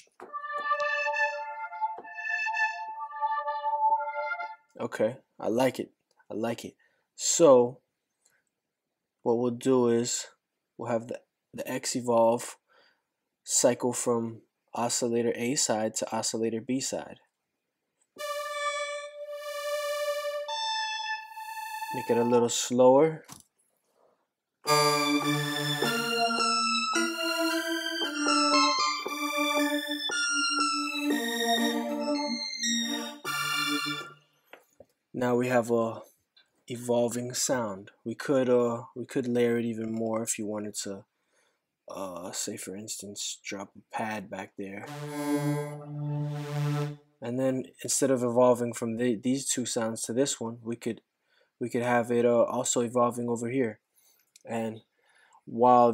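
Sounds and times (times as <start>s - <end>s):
synthesizer held note: 0.2s - 4.7s, 18.2s - 22.5s, 24.7s - 34.2s, 44.8s - 47.0s
sustained synthesizer note: 44.8s - 47.0s.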